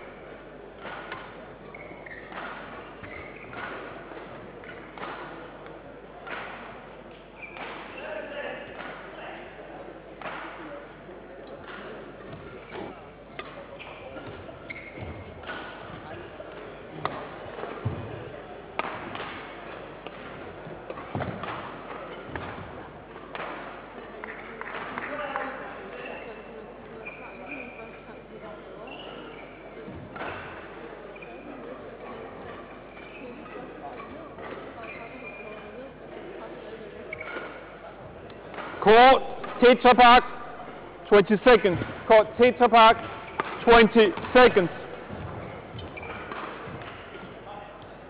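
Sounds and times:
murmur of voices echoing: 0:00.0 - 0:48.0
badminton racket strikes: 0:43.0 - 0:44.4.

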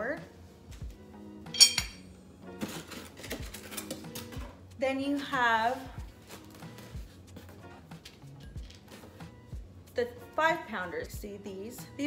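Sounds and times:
quiet background music: 0:00.0 - 0:12.0
metal clink with ringing: 0:01.5 - 0:02.0
rustling in cardboard box: 0:05.6 - 0:07.6.

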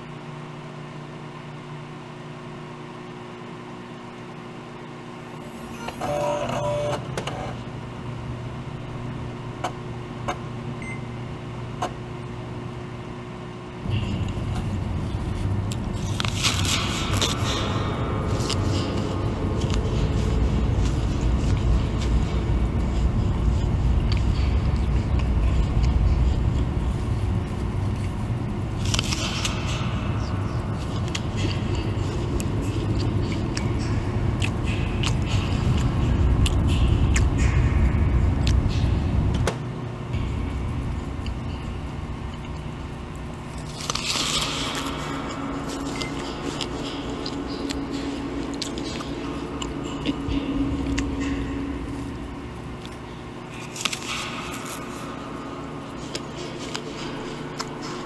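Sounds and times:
steady electronic hum: 0:00.0 - 0:58.0
short tone: 0:05.4 - 0:07.5, 0:10.8 - 0:11.2
loud low rumbling drone: 0:13.8 - 0:58.0
crunchy apple bites: 0:41.1 - 0:51.4, 0:52.7 - 0:58.0.

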